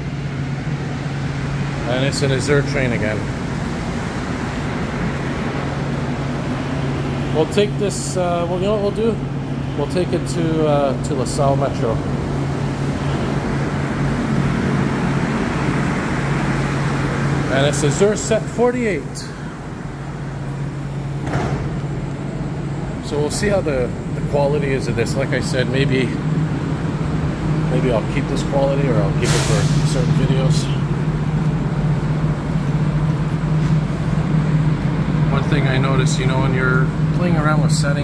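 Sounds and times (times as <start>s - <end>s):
metro station rumble and hum: 0.0s - 38.0s
sliding doors hissing open: 25.7s - 35.6s.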